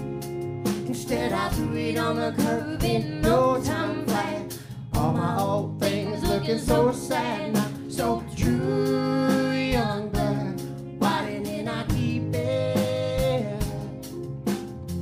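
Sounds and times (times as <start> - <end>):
guitar: 0.0 - 15.0
man and woman singing: 0.8 - 14.1.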